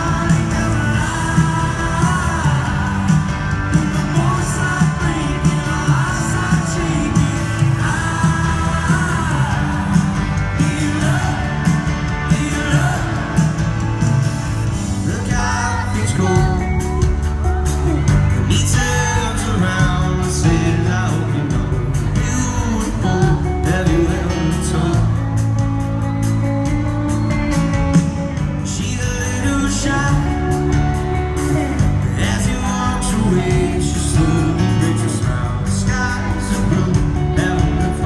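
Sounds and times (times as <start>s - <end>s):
person singing: 0.0s - 14.1s, 14.9s - 26.4s, 28.4s - 38.0s
live band playing: 0.0s - 38.0s.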